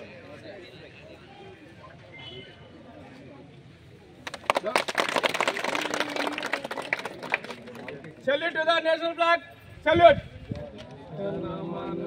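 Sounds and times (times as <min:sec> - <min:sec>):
crowd clapping: 0:04.2 - 0:08.2.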